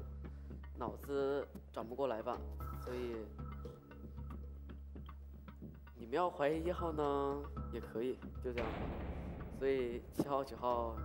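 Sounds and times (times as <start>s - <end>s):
ticking clock-like beat: 0.0s - 11.0s.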